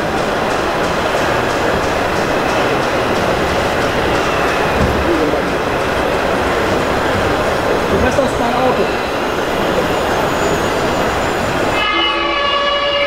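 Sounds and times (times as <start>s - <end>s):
indistinct voices: 0.0s - 13.0s
loud background din: 0.0s - 13.0s.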